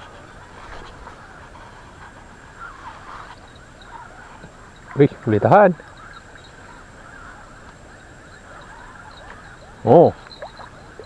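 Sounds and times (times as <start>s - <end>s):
faint chirping: 0.0s - 11.0s
low outdoor background: 0.0s - 11.0s.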